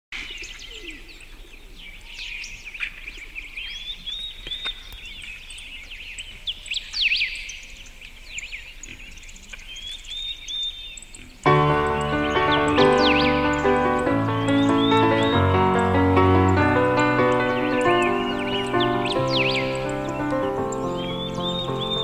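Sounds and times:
songbirds singing: 0.2 - 22.0
loud music: 11.5 - 22.0.

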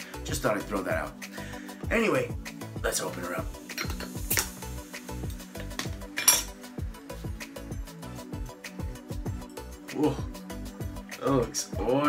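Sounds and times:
background music: 0.0 - 12.0
bottle cap metallic clinks: 6.2 - 6.5.

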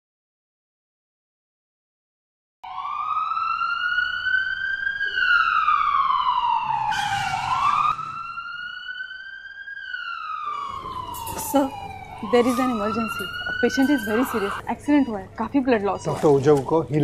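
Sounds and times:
ambulance siren wailing: 2.6 - 16.2.

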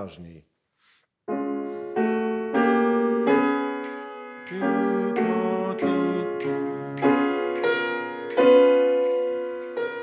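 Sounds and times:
grand piano notes: 1.3 - 10.0.

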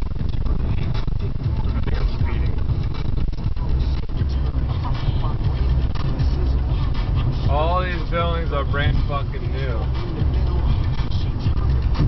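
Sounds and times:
car driving rumble: 0.0 - 12.0
man talking: 7.5 - 10.0.

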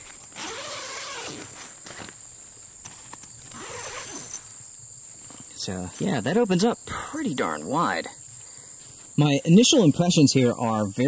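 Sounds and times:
tent zipper pulled open: 0.0 - 2.2, 3.1 - 4.5
insects buzzing: 0.0 - 11.0.

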